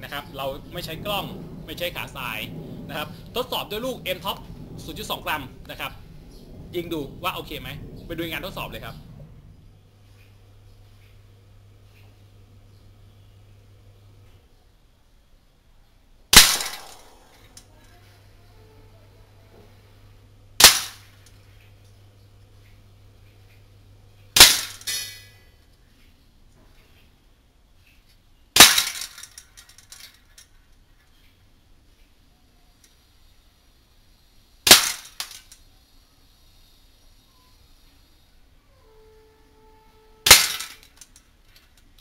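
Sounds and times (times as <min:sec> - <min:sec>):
airsoft rifle shot: 0:16.3 - 0:17.4, 0:20.6 - 0:21.1, 0:24.4 - 0:25.1, 0:28.6 - 0:29.1, 0:34.6 - 0:35.4, 0:40.3 - 0:40.8
pellet striking tin can: 0:28.6 - 0:29.2, 0:34.7 - 0:35.4, 0:40.3 - 0:40.9.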